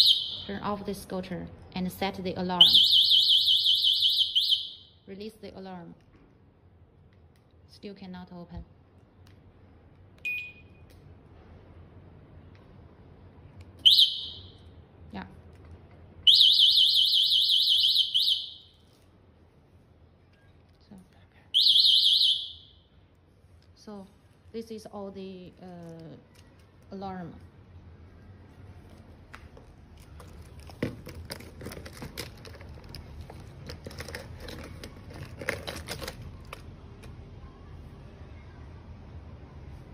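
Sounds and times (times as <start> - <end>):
alarm chirp: 0.0 - 0.5, 2.6 - 5.0, 13.9 - 14.6, 16.3 - 18.8, 21.6 - 22.8.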